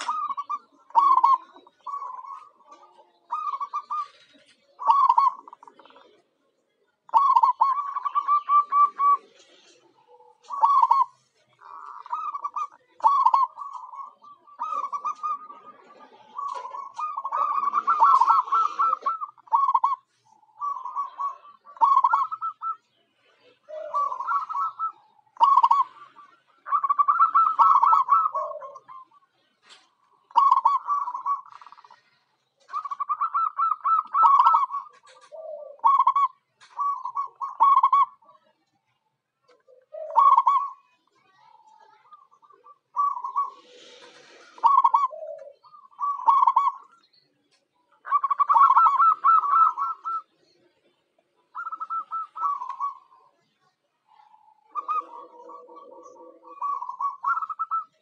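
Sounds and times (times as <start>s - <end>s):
dove trilled cooing: 0.0s - 38.6s, 39.5s - 58.0s.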